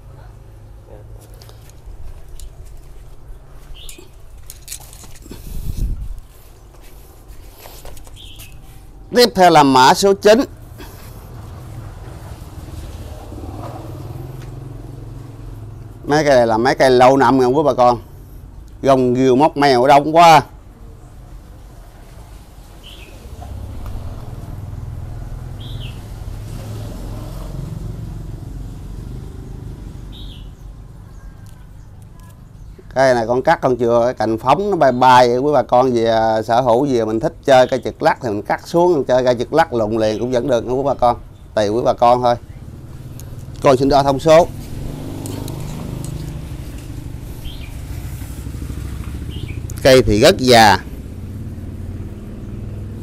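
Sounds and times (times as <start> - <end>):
bird chirps: 3.7 - 4.3, 8.0 - 9.2, 22.8 - 23.3, 25.6 - 26.1, 30.0 - 32.9, 45.2 - 47.9, 49.2 - 49.8.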